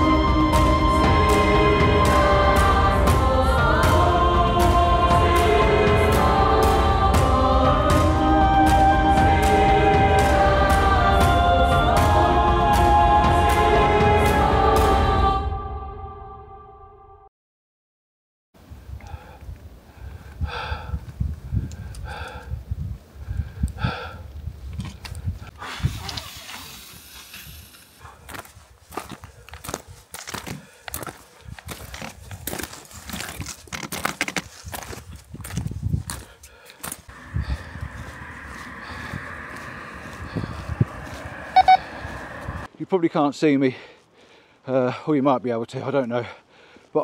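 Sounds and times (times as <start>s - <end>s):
indistinct voices: 0.0s - 16.0s, 37.1s - 42.7s
steady rushing hiss: 25.5s - 28.0s
footsteps crunching on loose rock: 28.0s - 37.1s.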